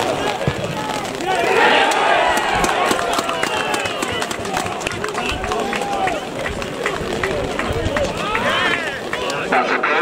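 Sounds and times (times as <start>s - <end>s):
crowd shouting in celebration: 0.0s - 10.0s
scattered handclaps: 1.3s - 9.6s.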